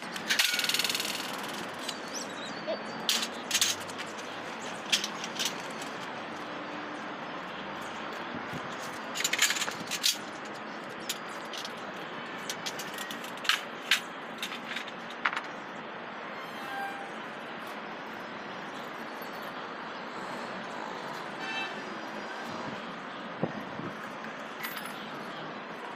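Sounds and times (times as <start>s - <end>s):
outdoor background noise: 0.0s - 25.9s
metallic scraping rattle: 0.1s - 2.0s.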